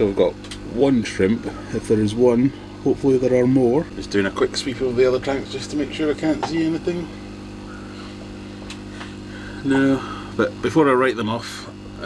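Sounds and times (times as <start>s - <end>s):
air pump humming: 0.0s - 12.0s.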